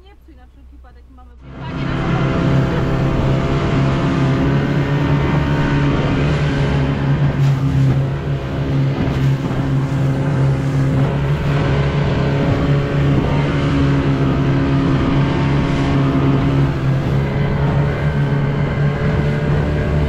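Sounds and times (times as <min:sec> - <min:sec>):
outboard motor running: 0:00.0 - 0:20.0
water rushing along hull: 0:01.3 - 0:20.0.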